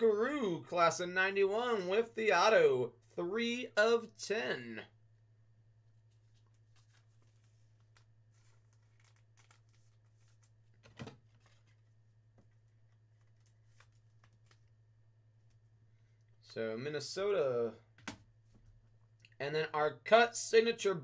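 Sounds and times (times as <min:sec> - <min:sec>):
low electrical hum: 0:00.0 - 0:21.0
card rustling in plastic holder: 0:06.1 - 0:11.9.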